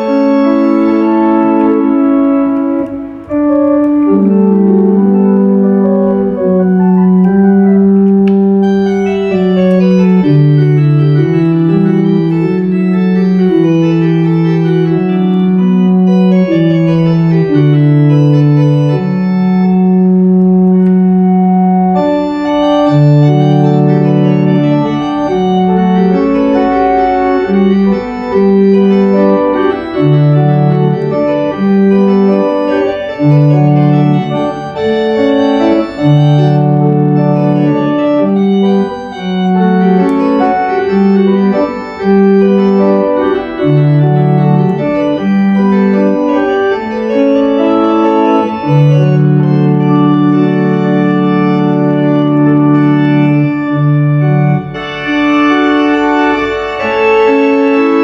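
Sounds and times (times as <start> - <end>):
pipe organ chords: 0.0 - 58.0.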